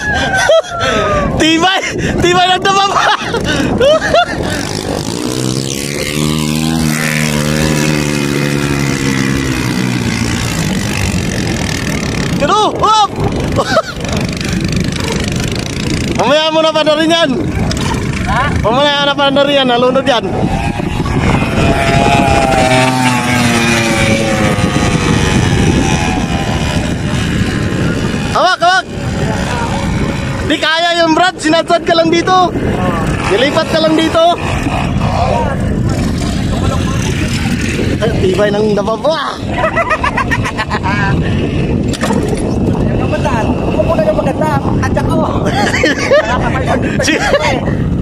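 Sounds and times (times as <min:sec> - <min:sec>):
people talking and calling out: 0:00.0 - 0:06.9, 0:07.5 - 0:48.0
atv engines idling: 0:03.0 - 0:31.6.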